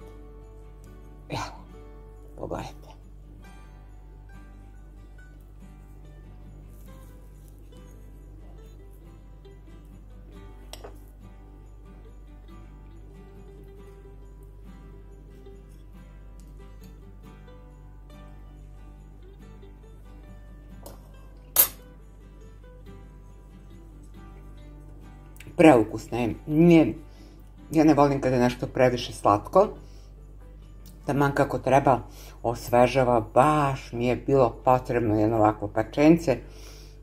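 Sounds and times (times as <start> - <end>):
quiet background music: 0.0 - 37.0
fork clinking on ceramic plate: 10.7 - 11.0, 21.6 - 21.9.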